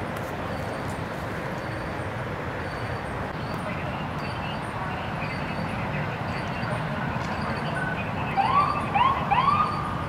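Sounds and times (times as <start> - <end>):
siren whoops: 7.8 - 10.0.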